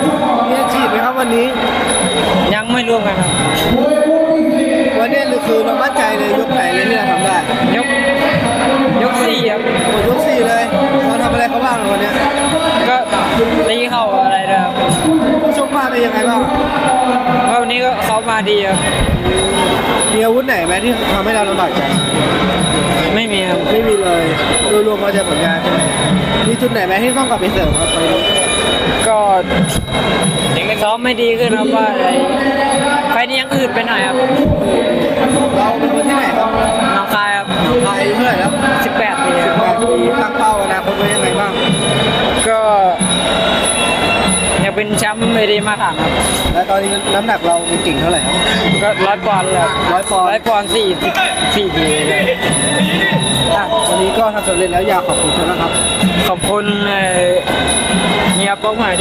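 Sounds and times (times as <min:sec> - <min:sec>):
young man speaking: 0:00.0 - 0:41.8, 0:42.4 - 0:43.1, 0:44.6 - 0:57.5, 0:58.2 - 0:59.0
busy background noise: 0:00.0 - 0:59.0
high-pitched tones: 0:00.0 - 0:59.0
voices talking: 0:00.0 - 0:59.0.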